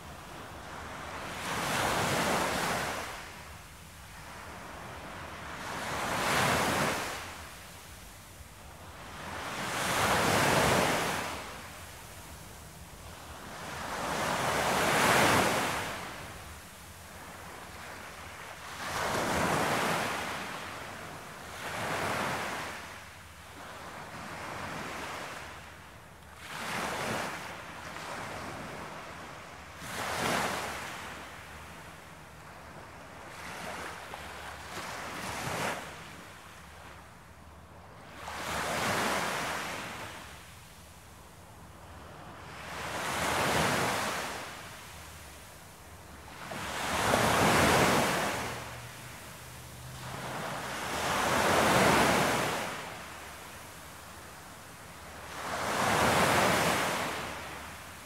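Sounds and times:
waves breaking on shore: 0.0s - 25.6s, 42.4s - 58.0s.

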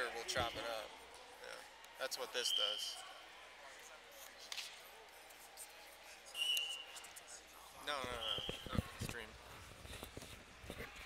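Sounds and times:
gym hall background noise: 0.0s - 11.0s
referee's whistle blown: 6.3s - 7.0s.

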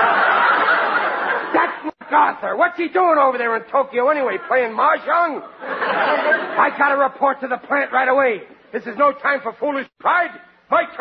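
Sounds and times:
studio audience laughing: 0.0s - 2.0s, 4.1s - 7.0s.

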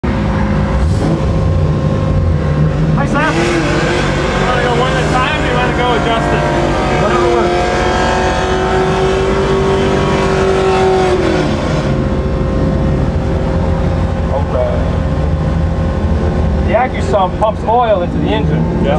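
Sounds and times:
car engine idling: 0.0s - 18.9s.

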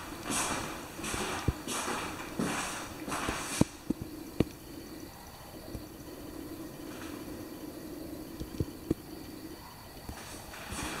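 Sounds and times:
footsteps on floor: 0.0s - 3.9s, 10.1s - 11.0s
low steady background sound: 0.0s - 11.0s.

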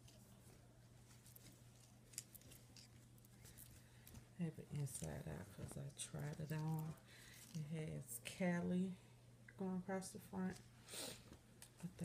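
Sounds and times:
clothing rustling: 0.0s - 7.7s
low steady hum: 0.0s - 12.0s.

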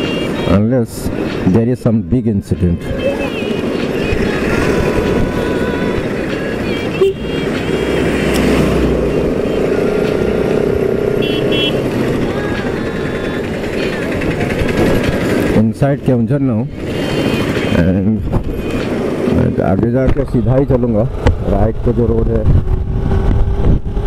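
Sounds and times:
wind rush on microphone: 0.0s - 24.0s
motorcycle engine: 3.3s - 19.3s, 20.4s - 24.0s
short high horn beeps: 6.9s - 7.4s, 11.2s - 11.8s.

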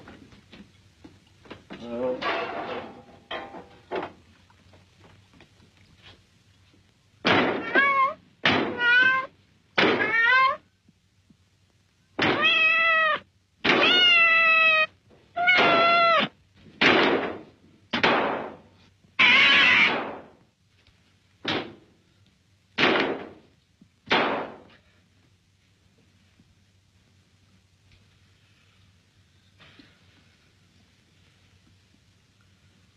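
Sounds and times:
cat meowing: 7.5s - 9.3s, 10.0s - 10.6s, 12.2s - 16.3s, 19.2s - 20.1s.

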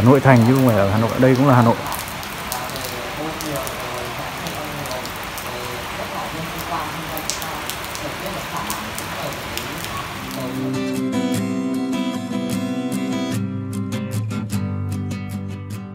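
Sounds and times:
water dripping: 0.0s - 11.0s
rain on wet pavement: 0.0s - 13.3s
acoustic guitar music: 10.2s - 15.9s.

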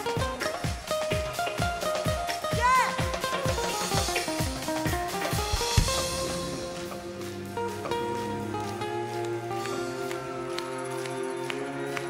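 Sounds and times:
live band playing chords: 0.0s - 12.0s.

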